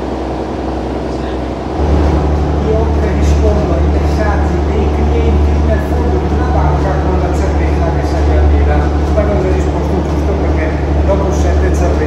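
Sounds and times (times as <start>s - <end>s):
boat engine drone: 0.0s - 12.0s.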